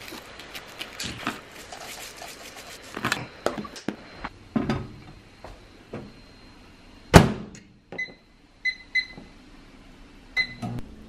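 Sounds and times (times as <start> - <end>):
microwave keypad beeps: 8.0 - 9.2, 10.4 - 10.7.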